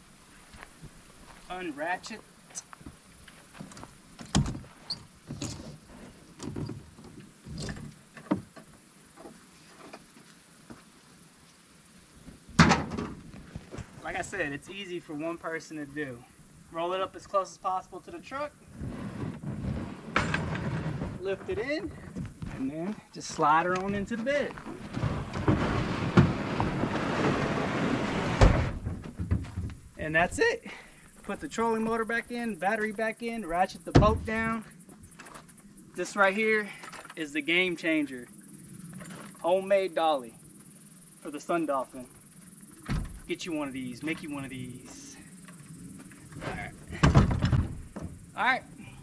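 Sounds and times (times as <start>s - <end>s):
knocks and heavy thump: 12.5s - 13.9s, 24.6s - 30.0s, 33.9s - 34.6s, 42.8s - 43.3s, 46.4s - 48.3s
plastic boat hull scraping: 18.7s - 21.8s, 24.6s - 29.8s.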